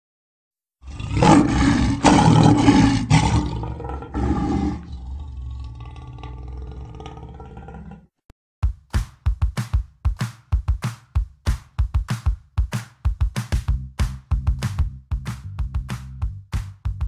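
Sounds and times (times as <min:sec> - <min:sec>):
big cat roaring: 0:00.8 - 0:08.1.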